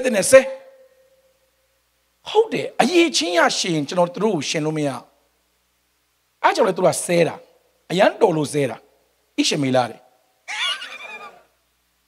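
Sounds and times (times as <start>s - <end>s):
high-pitched laughter: 10.5s - 11.5s.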